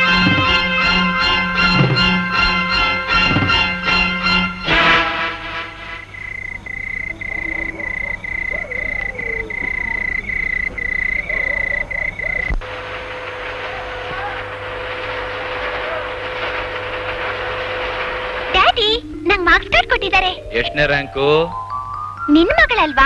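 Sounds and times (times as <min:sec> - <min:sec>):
high-pitched insect trill: 0:06.0 - 0:12.5
paper-handling machine humming: 0:11.9 - 0:18.8.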